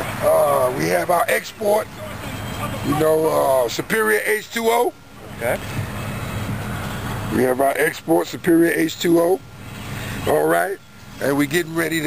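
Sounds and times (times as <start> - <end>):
motor vehicle running: 0.0 - 12.0.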